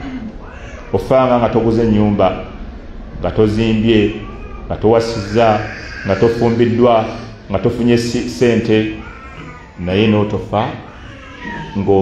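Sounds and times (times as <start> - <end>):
man speaking in drawn-out syllables: 3.2 - 9.1.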